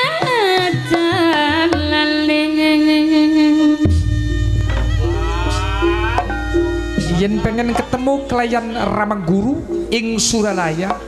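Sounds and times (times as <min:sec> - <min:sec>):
gamelan struck notes: 0:03.8 - 0:11.0.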